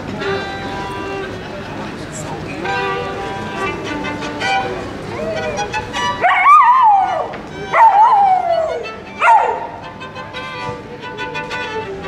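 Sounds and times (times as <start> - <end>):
violin playing: 0.0 - 12.0
dog howling: 6.2 - 9.8.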